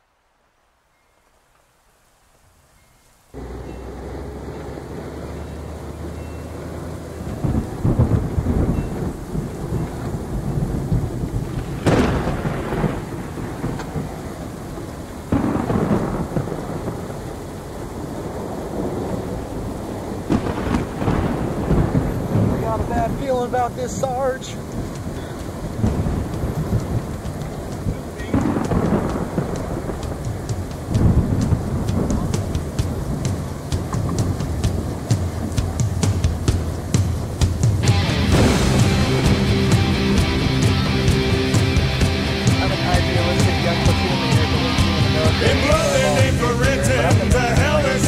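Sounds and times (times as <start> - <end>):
heavy rain: 0.0 - 48.0
thunder rumbles: 3.4 - 48.0.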